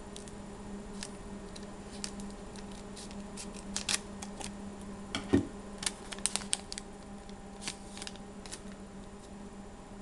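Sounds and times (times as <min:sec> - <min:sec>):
steady low hum: 0:00.0 - 0:10.0
cards clicking and rustling: 0:00.9 - 0:04.6, 0:05.8 - 0:08.8.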